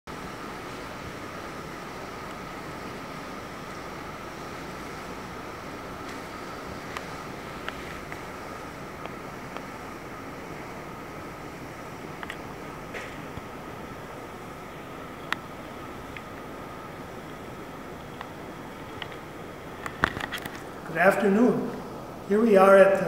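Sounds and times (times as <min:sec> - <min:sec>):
faint high whine: 0:00.1 - 0:23.0.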